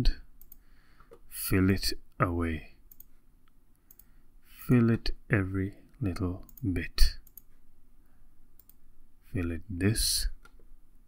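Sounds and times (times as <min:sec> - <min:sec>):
computer mouse clicks: 0:00.4 - 0:01.2, 0:02.9 - 0:04.1, 0:06.4 - 0:07.5, 0:08.6 - 0:08.8.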